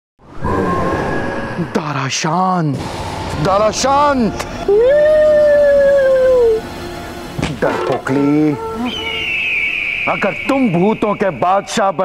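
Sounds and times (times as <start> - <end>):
wolf howl: 4.6 - 6.7.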